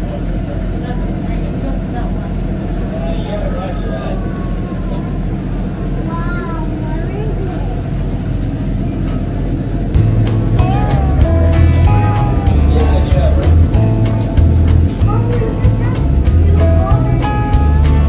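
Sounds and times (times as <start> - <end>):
boat engine running: 0.0 - 18.0
music with heavy beat: 10.0 - 18.0.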